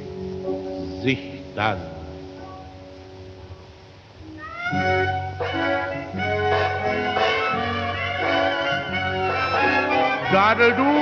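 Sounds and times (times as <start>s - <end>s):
quiet held instrumental chords: 0.0s - 11.0s.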